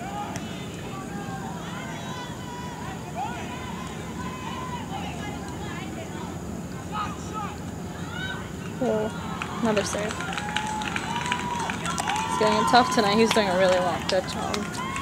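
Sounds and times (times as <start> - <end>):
distant shouts and chatter: 0.0 - 15.0.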